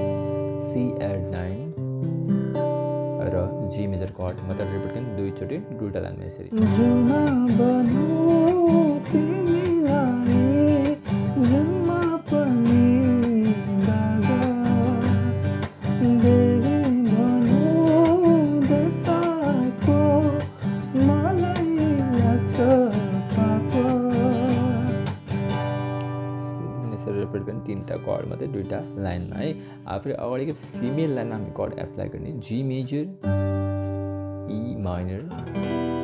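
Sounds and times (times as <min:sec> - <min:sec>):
acoustic guitar strumming: 0:00.0 - 0:36.0
person singing: 0:06.5 - 0:25.2, 0:30.6 - 0:31.6.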